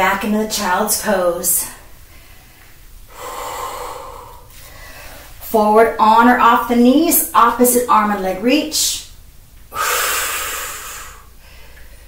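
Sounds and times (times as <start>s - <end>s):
person breathing out hard: 3.1s - 5.3s, 9.7s - 11.8s.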